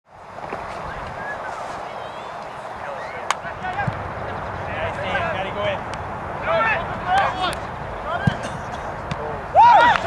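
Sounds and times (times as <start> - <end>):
people shouting calls: 6.4 - 8.4, 9.4 - 10.0.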